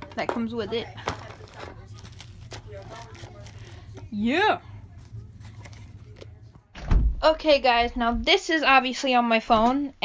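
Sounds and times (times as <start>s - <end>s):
low steady hum: 0.0s - 8.5s.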